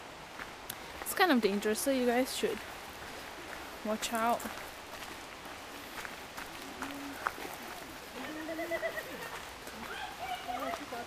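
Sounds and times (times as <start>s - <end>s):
footsteps on gravel: 0.3s - 11.0s
people talking in background: 5.8s - 11.0s.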